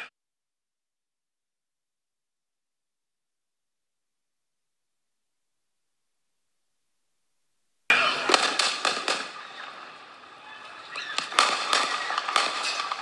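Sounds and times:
gunshot cracks: 7.9 - 9.8, 11.1 - 13.0.

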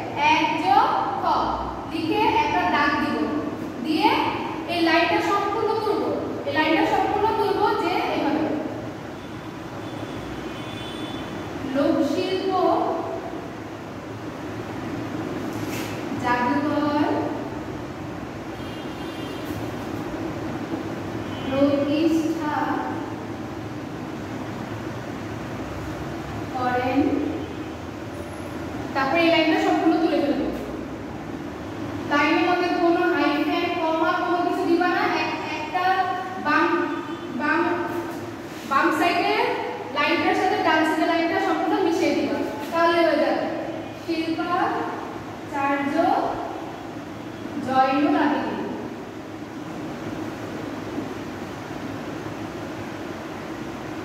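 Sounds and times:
woman's voice: 0.0 - 8.7, 11.7 - 13.2, 16.2 - 17.4, 21.5 - 23.1, 26.6 - 27.3, 29.0 - 30.8, 32.1 - 46.5, 47.6 - 48.8
room noise hiss: 0.0 - 54.0
steady background noise: 0.0 - 54.0.

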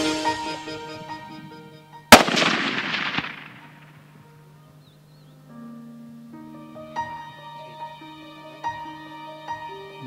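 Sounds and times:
rifle shot with echo: 2.1 - 4.1.

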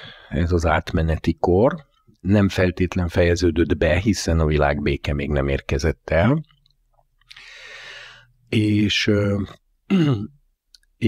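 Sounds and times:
man speaking: 0.3 - 6.6, 8.5 - 10.3.

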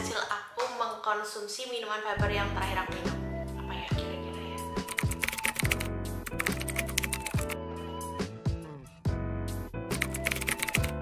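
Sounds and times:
background music with bass line: 2.2 - 11.0
keyboard typing clicks: 4.9 - 7.6, 10.0 - 11.0.

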